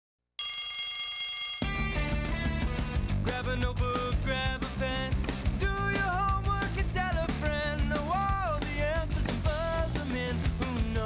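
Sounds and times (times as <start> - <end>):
bell ringing: 0.4 - 1.9
theme music with drums and guitar: 1.6 - 11.0.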